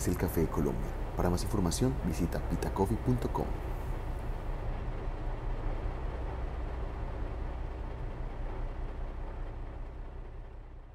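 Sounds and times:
car driving low rumble: 0.0 - 10.9.

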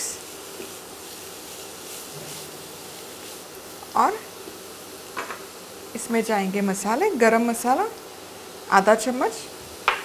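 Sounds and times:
spatula stirring in pan: 0.0 - 5.5
vegetables sizzling in oil: 0.0 - 10.0.

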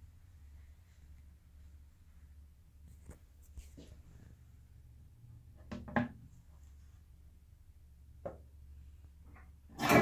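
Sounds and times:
faint low room hum: 0.0 - 10.0
soft rustling handling noises: 0.4 - 4.6.

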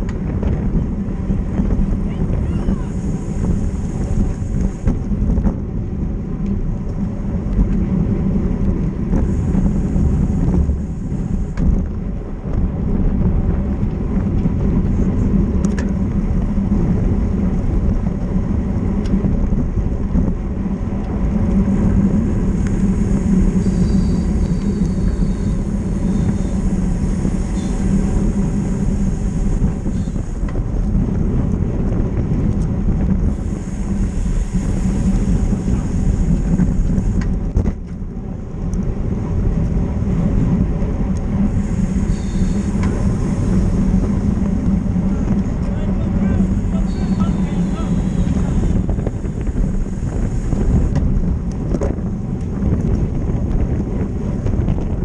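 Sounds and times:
bike tyre rumble: 0.0 - 55.0
wind rush: 0.0 - 55.0.

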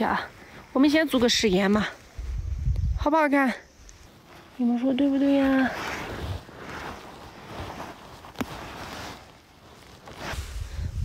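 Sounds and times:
rustling flower stems: 0.0 - 11.0.

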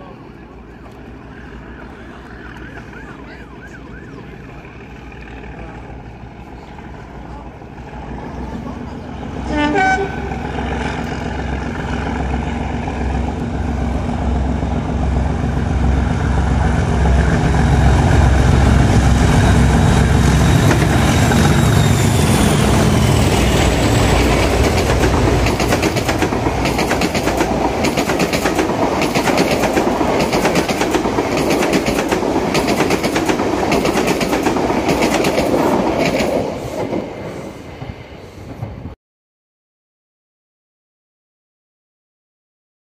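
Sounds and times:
diesel locomotive engine: 0.0 - 39.0
train horn blast: 9.4 - 11.0
train wheels clickety-clack: 19.3 - 38.8.

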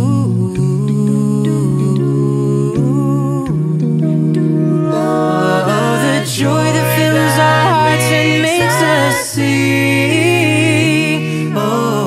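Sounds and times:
voices humming in harmony: 1.4 - 12.0.

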